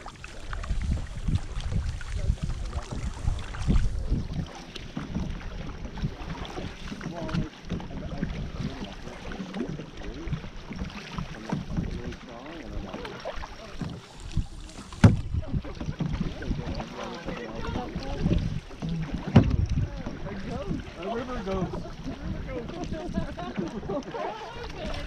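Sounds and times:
water splashing from paddles: 0.0 - 25.0.

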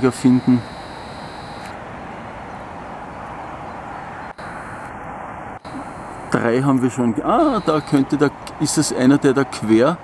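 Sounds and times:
steady outdoor background rush: 0.0 - 10.0.

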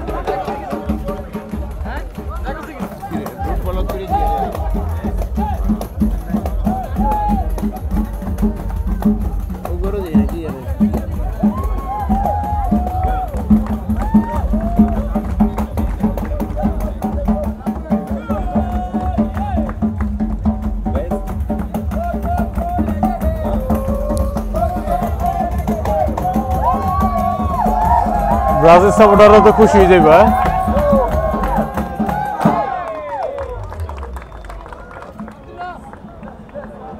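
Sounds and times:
steady drum beat: 0.0 - 32.8
hand percussion: 0.0 - 34.4
crowd chattering: 0.0 - 36.9.

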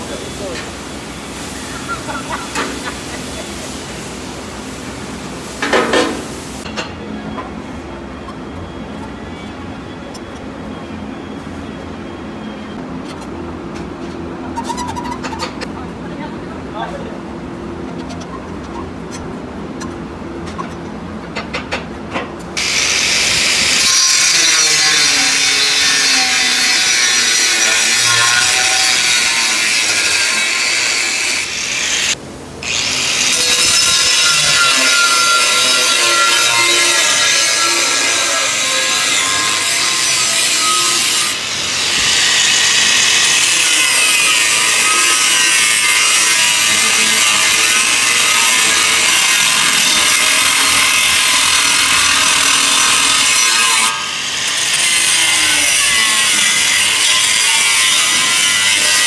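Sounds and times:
angle grinder cutting steel: 22.6 - 59.0.

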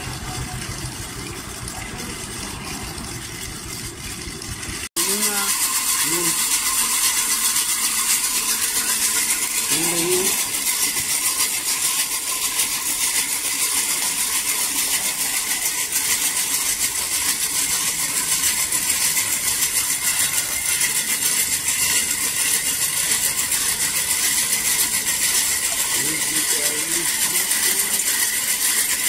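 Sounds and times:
gear rattle: 0.0 - 29.0
hand-cranked blower whirring: 0.0 - 29.0.

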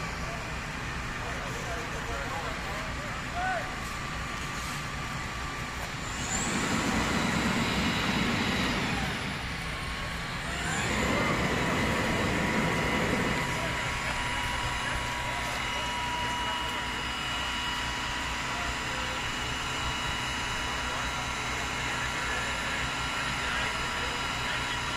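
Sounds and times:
diesel engine rumbling: 0.0 - 24.9.

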